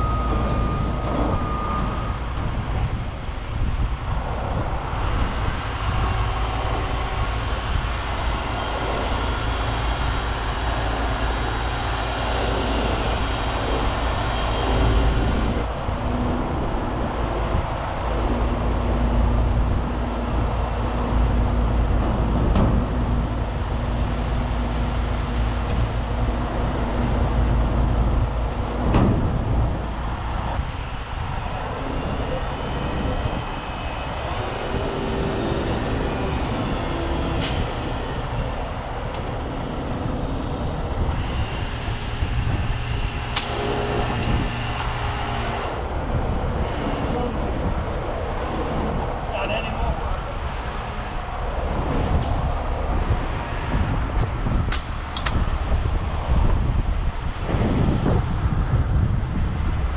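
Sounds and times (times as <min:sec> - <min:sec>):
diesel truck engine running: 0:00.0 - 0:59.9.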